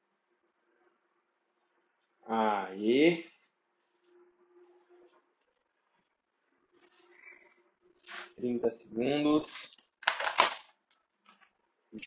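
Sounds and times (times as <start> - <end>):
plastic water bottle crinkling: 9.4 - 11.5.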